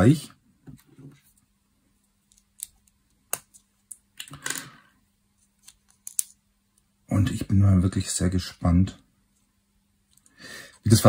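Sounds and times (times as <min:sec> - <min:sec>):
plastic bricks clicking: 0:05.9 - 0:06.4.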